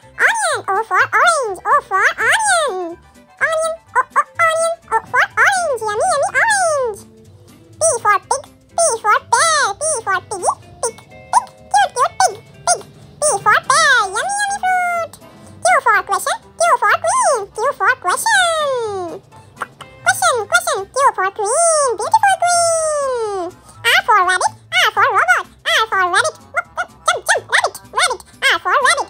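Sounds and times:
light backing music: 0.0s - 29.0s
high-pitched voice singing: 0.2s - 7.1s, 7.8s - 29.0s.

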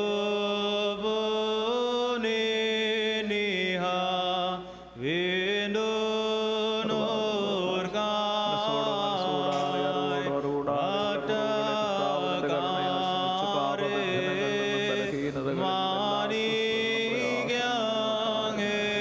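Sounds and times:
slow melodic hymn chant: 0.0s - 19.0s.

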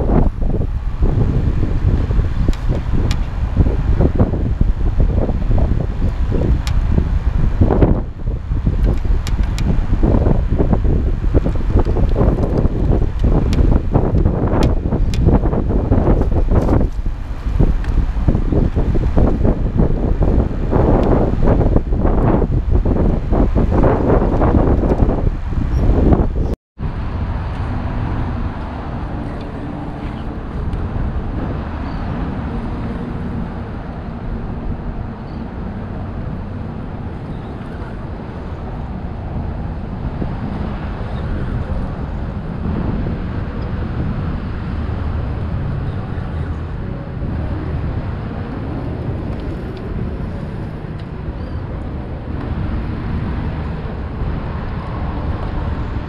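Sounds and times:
muffled wind and water rumble: 0.0s - 56.0s.

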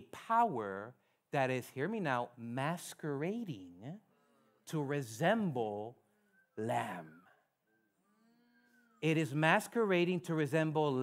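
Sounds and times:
man speaking: 0.0s - 7.5s, 9.0s - 11.0s
faint pitched tone: 3.8s - 10.3s.

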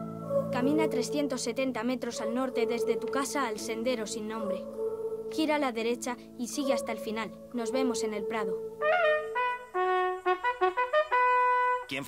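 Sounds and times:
bugle call on brass horn: 8.8s - 12.0s.

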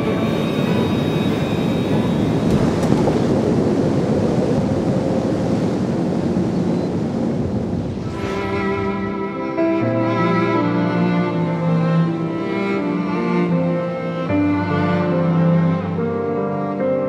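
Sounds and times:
deep rumbling noise bed: 0.0s - 12.0s
rising whoosh: 7.7s - 10.0s.

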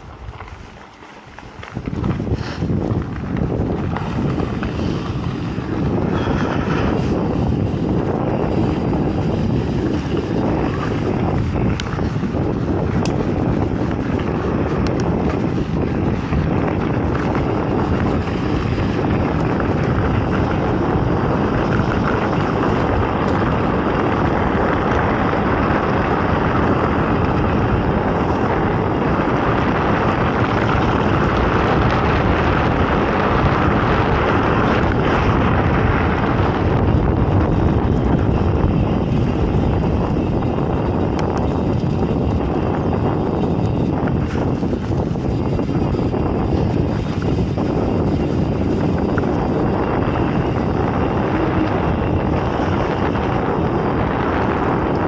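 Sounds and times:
tyres rolling over gravel: 0.0s - 55.0s
wind buffeting microphone: 0.0s - 55.0s.

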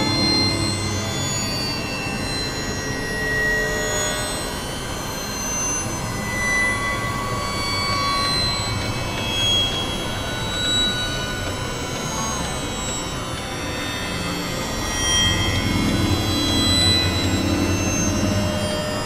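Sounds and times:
droning noise music: 0.0s - 19.0s
thin sustained tones: 0.0s - 19.0s.

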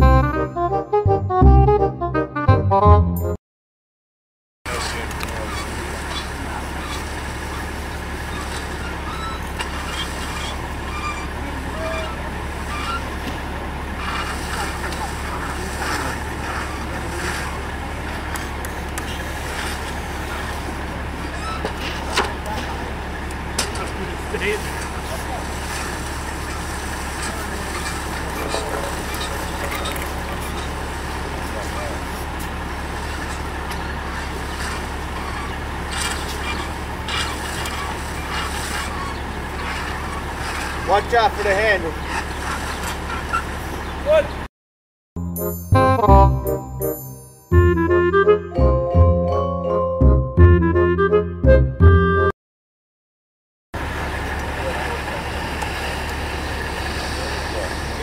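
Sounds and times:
low engine rumble: 4.7s - 44.5s, 53.8s - 58.0s.

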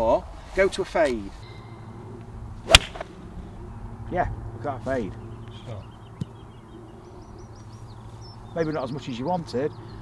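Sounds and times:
low background rumble: 1.4s - 10.0s
small bird chirping: 5.0s - 10.0s.

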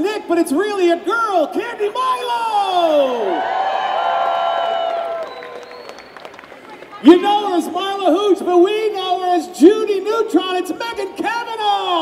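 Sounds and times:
low crowd noise: 0.0s - 12.0s
crowd shouting and whooping: 2.1s - 7.7s.

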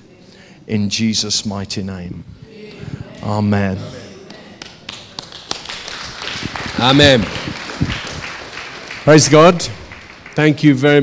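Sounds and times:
people clapping: 4.2s - 11.0s.

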